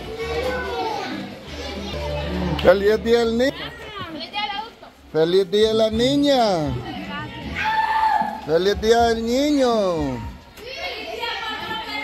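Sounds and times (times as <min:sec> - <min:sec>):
children chattering: 0:00.0 - 0:05.1, 0:09.6 - 0:12.0.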